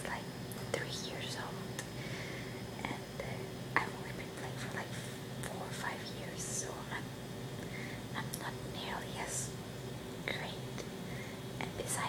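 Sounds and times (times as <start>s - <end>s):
woman whispering: 0.0s - 1.7s, 2.8s - 7.1s, 8.2s - 9.5s, 10.2s - 10.8s, 11.6s - 12.0s.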